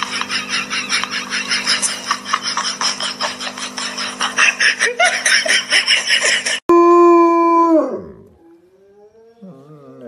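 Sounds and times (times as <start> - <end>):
dog howling: 6.8 - 10.0.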